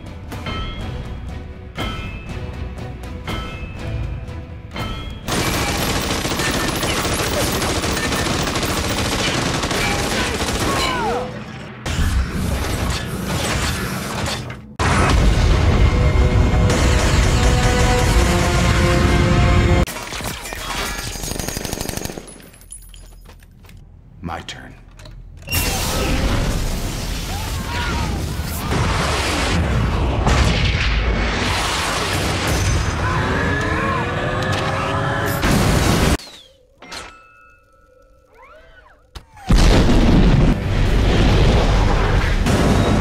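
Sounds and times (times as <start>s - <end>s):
rapid gunfire: 5.3s - 11.1s, 21.1s - 22.3s
flamethrower blast: 25.7s - 33.0s, 39.5s - 43.0s.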